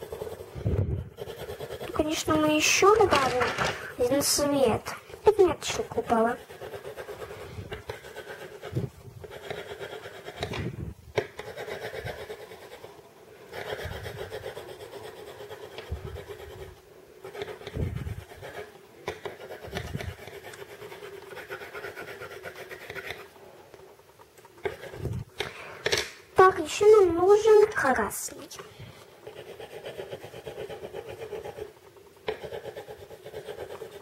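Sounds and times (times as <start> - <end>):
pencil scratching on paper: 0.0 - 25.4, 26.4 - 34.0.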